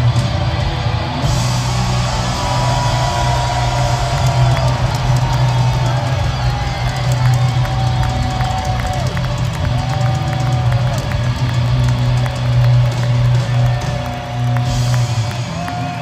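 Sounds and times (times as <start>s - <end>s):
crowd cheering: 0.0s - 16.0s
drums: 0.0s - 16.0s.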